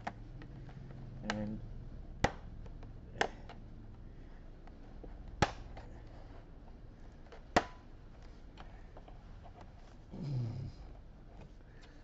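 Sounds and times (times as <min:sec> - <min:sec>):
plastic clips snapping loose: 0:02.2 - 0:03.6.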